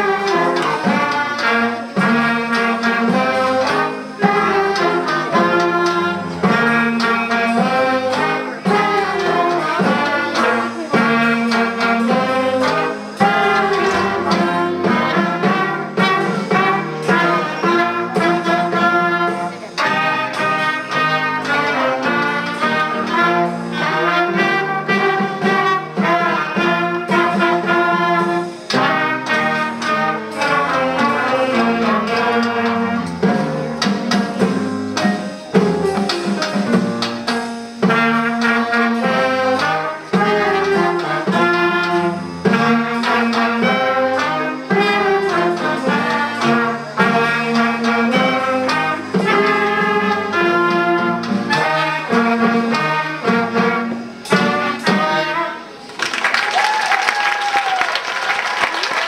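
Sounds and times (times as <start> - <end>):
school band playing: 0.0 - 59.0.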